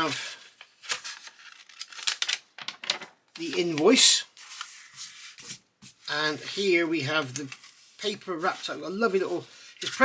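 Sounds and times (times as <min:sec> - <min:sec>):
paper crinkling: 0:00.5 - 0:05.6.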